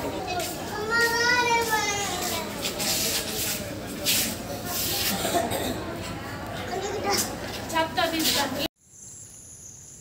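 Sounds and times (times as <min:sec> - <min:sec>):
faint voices: 0:00.0 - 0:08.7.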